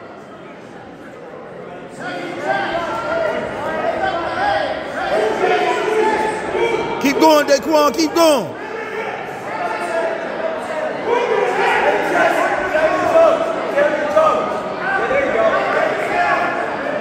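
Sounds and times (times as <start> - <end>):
spectators shouting and talking: 0.0 - 17.0.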